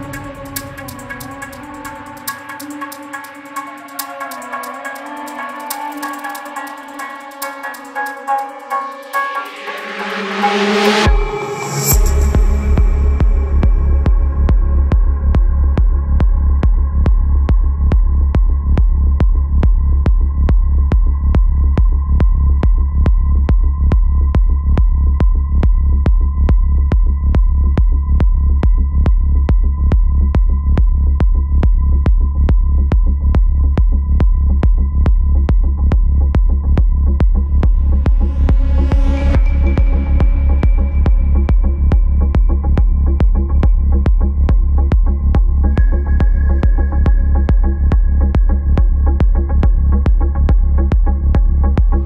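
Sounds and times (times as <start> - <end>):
psytrance music: 0.0 - 52.0.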